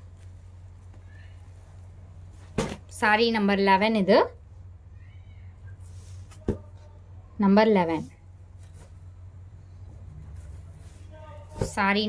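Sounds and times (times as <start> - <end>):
low steady hum: 0.0 - 12.0
fabric rustling: 8.5 - 11.9.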